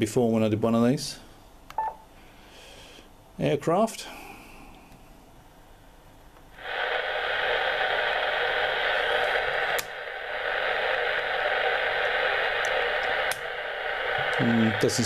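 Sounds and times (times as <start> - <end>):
radio receiver hiss: 6.4 - 15.0
radio click: 6.7 - 15.0.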